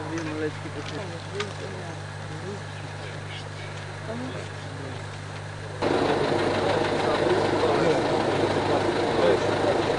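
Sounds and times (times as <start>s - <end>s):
vehicle engine running: 0.0s - 9.9s
people talking: 5.7s - 9.9s.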